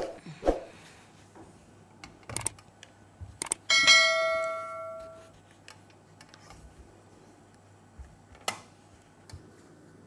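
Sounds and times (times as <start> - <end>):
small bell ringing: 3.7 - 5.2.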